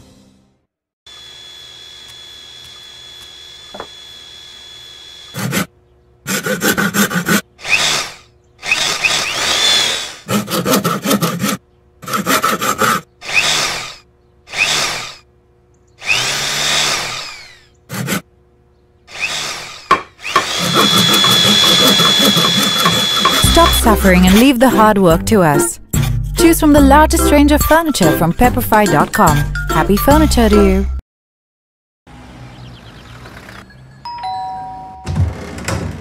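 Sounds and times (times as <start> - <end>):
steady high whine: 1.1 - 5.4
drilling wood: 1.1 - 5.7, 6.3 - 11.2, 12.4 - 15.2, 16.0 - 18.2, 19.1 - 23.8
sawing wood: 1.1 - 15.2, 16.0 - 18.3, 19.1 - 24.5.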